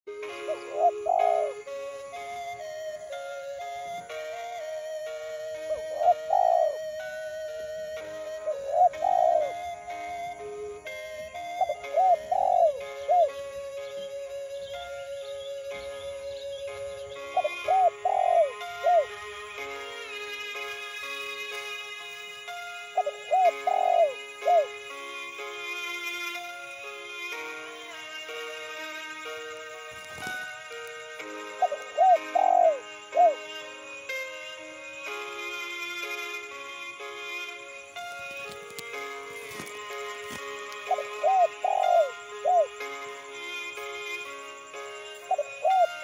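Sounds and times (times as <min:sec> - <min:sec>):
arched bird calls: 0:00.1 - 0:36.4, 0:37.4 - 0:46.0
background music: 0:00.1 - 0:46.0
dove cooing: 0:00.4 - 0:01.8, 0:05.6 - 0:07.1, 0:08.2 - 0:09.9, 0:11.6 - 0:13.4, 0:17.4 - 0:19.1, 0:23.0 - 0:24.7, 0:31.6 - 0:33.4, 0:40.9 - 0:42.7, 0:45.3 - 0:46.0.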